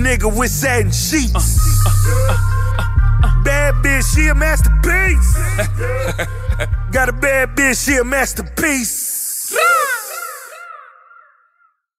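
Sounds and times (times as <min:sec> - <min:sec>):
crow cawing with echoes: 0:09.6 - 0:11.9.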